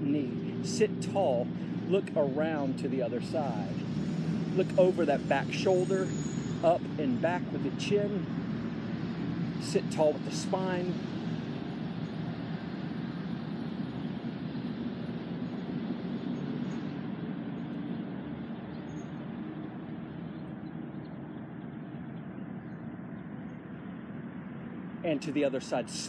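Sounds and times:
distant road traffic rumble: 0.0 - 26.0.

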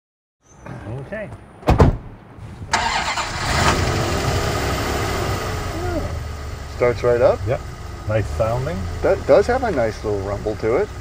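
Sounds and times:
car engine starting and idling: 2.6 - 11.0.

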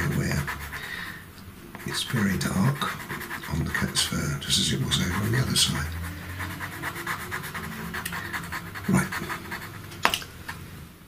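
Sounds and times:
pencil scratching on paper: 0.0 - 1.1, 1.8 - 10.0.

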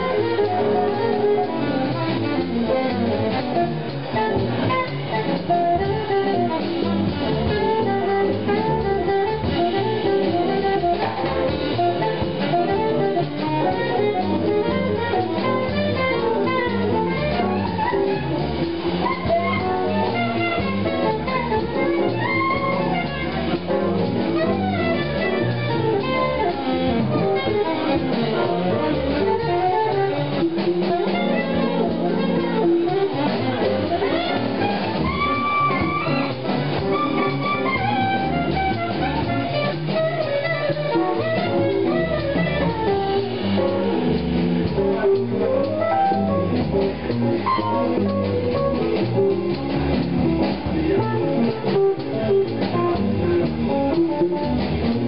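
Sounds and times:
live jazz quartet playing: 0.0 - 55.0.

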